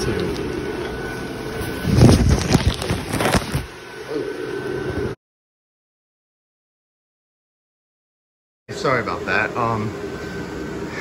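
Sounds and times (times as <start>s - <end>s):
blower fan running: 0.0s - 5.2s, 8.7s - 11.0s.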